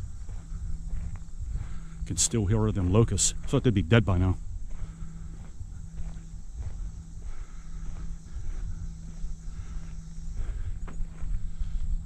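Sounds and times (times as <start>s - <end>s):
cicadas droning: 0.0s - 12.0s
footsteps on gravel: 0.0s - 12.0s.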